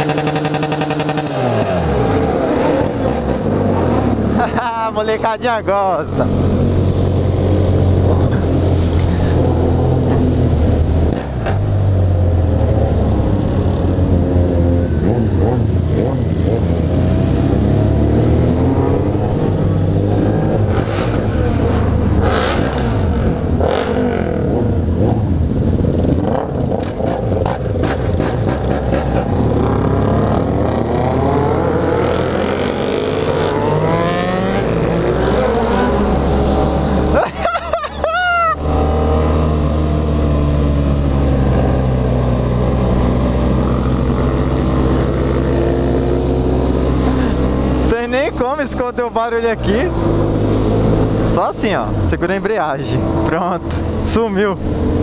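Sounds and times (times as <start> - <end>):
motorcycles revving: 0.0 - 55.0.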